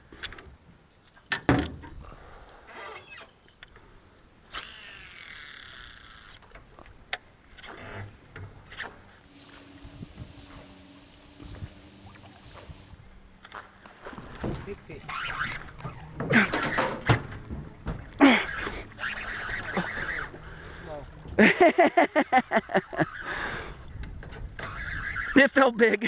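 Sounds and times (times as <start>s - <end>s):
fishing reel whirring hiss: 9.2s - 13.0s
faint steady hum: 9.3s - 13.0s.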